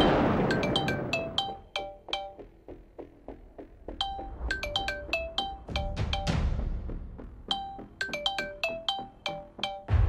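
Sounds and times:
phone ringtone melody: 0:00.5 - 0:02.4, 0:04.0 - 0:06.4, 0:07.5 - 0:09.9.

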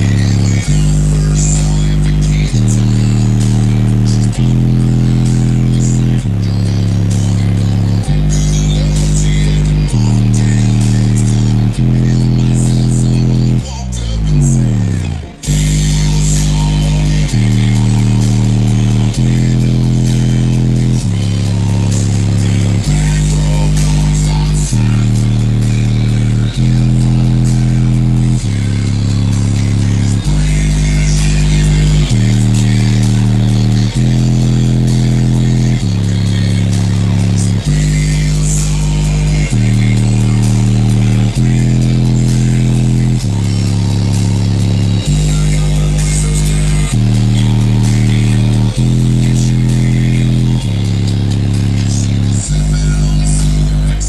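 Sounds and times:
bass-heavy electronic music: 0:00.0 - 0:54.0.

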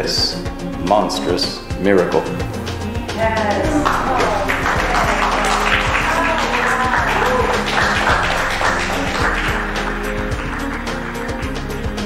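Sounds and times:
background music: 0:00.0 - 0:12.0
audience applauding: 0:03.6 - 0:12.0.

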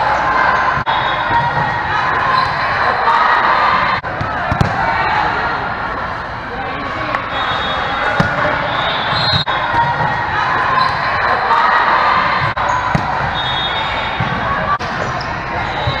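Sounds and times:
chatter of players and spectators: 0:00.0 - 0:16.0
sneakers squeaking on court floor: 0:00.5 - 0:02.8, 0:07.2 - 0:11.2, 0:12.2 - 0:16.0.

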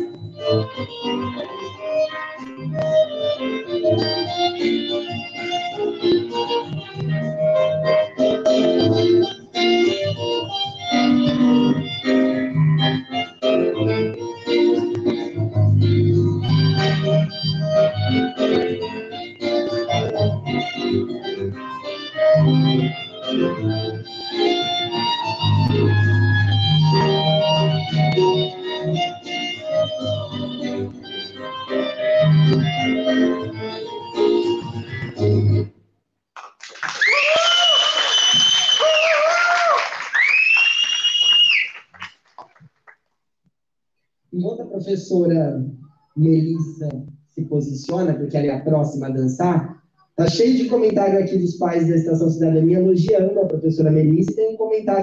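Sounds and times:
instrumental ballet music: 0:00.0 - 0:35.7.

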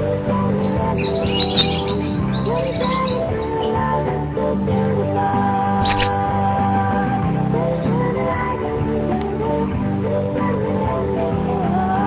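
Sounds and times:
background guitar music: 0:00.0 - 0:12.0
lovebirds chirping: 0:00.6 - 0:04.0, 0:05.8 - 0:06.4.

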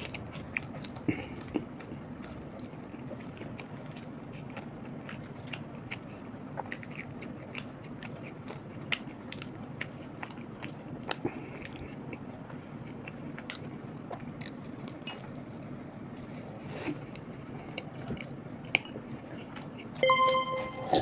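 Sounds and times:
people chewing: 0:00.0 - 0:20.0.

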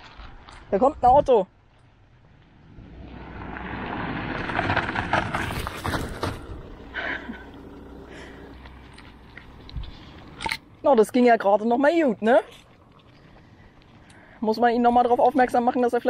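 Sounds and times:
car passing on gravel: 0:01.6 - 0:16.0.

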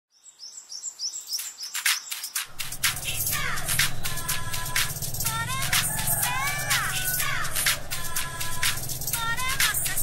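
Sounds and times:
birds chirping: 0:00.1 - 0:10.0
steady low drone: 0:02.5 - 0:10.0.

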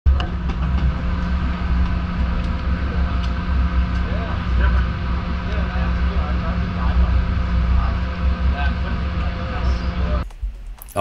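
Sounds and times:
boat engine rumbling: 0:00.0 - 0:10.2.

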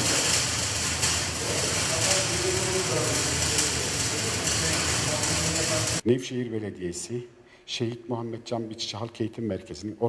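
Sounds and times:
arc welder crackling and hissing: 0:00.0 - 0:06.0.

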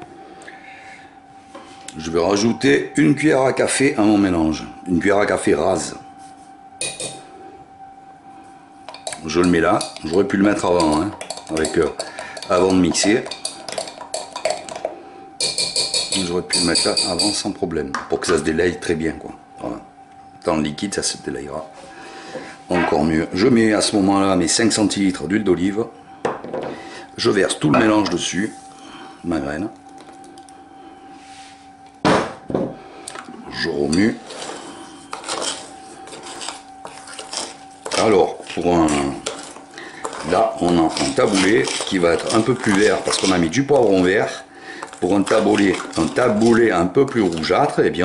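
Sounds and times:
faint steady hum: 0:00.0 - 0:48.0
teaspoon clinking glass jug: 0:10.8 - 0:14.8, 0:15.4 - 0:17.4, 0:39.2 - 0:43.5, 0:44.8 - 0:47.5
kitchenware knocking on wooden table: 0:32.0 - 0:32.8.

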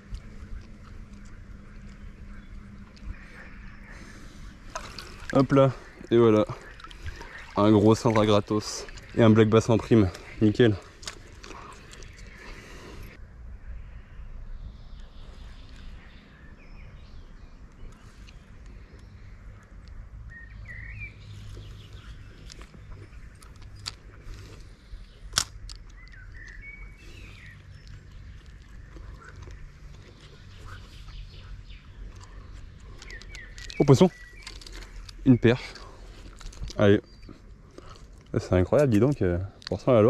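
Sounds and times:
bird chirps: 0:00.0 - 0:38.1
steady low rumble: 0:00.0 - 0:38.5
small clicks: 0:32.2 - 0:35.2.

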